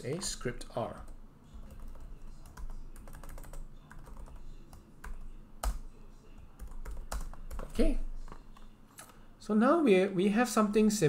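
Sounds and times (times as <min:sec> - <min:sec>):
computer keyboard typing: 0:00.1 - 0:09.2.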